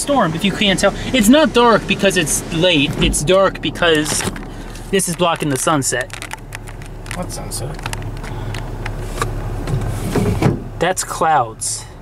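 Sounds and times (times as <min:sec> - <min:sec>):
car idling from inside: 0:00.2 - 0:10.9.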